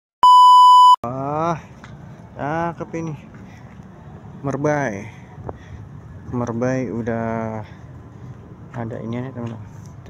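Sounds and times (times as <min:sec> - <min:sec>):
test-tone beep: 0:00.2 - 0:01.0.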